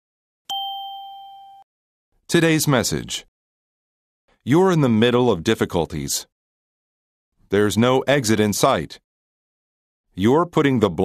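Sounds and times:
bell-like chime ding: 0.5 - 1.7.

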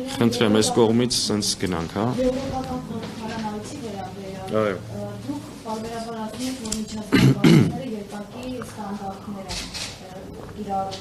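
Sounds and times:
people talking: 0.0 - 11.0
man clearing his throat: 7.1 - 7.8.

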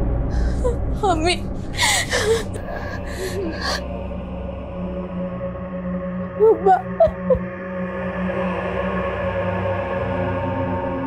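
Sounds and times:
girl crying: 0.4 - 3.8, 6.4 - 7.4
gasping breaths: 1.7 - 3.9.

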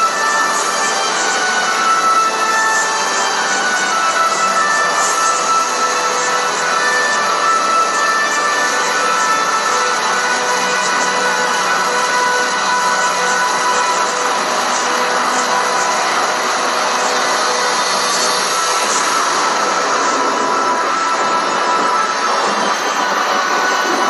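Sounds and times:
loud music: 0.0 - 24.0
steady hiss: 0.0 - 24.0.

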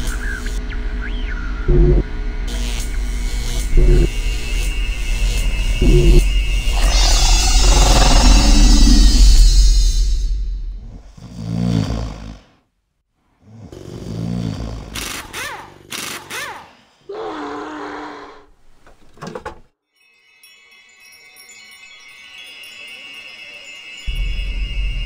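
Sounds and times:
held low tone: 1.4 - 2.2, 3.0 - 11.2, 24.1 - 25.0
low swells: 3.0 - 11.2
whistling glides: 3.6 - 11.0, 21.1 - 25.0
shimmer of chime-like tones: 19.9 - 25.0.

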